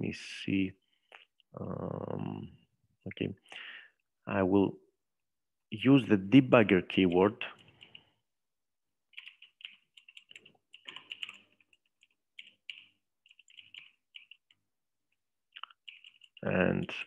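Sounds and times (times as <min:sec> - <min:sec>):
typing on computer keyboard: 0:07.6 - 0:08.1, 0:09.1 - 0:14.6, 0:15.6 - 0:16.6.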